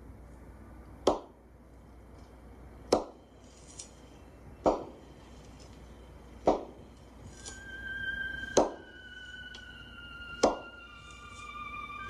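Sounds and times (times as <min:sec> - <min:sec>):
eerie music of high held tones: 0:01.8 - 0:12.0.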